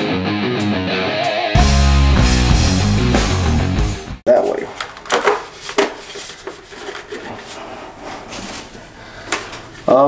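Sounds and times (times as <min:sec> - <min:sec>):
plastic helmet rubbing and scraping: 0:05.3 - 0:09.0.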